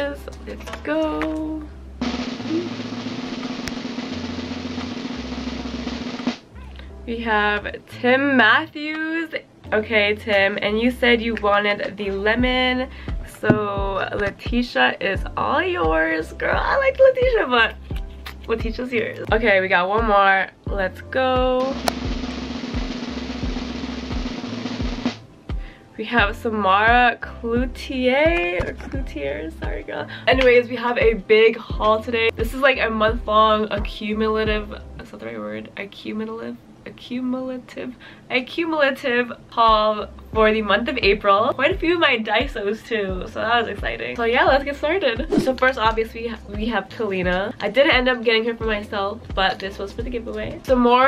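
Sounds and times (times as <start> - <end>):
background music with steady beat: 0.0 - 36.8, 39.4 - 51.0
snare drum roll: 2.0 - 6.5, 21.7 - 25.2.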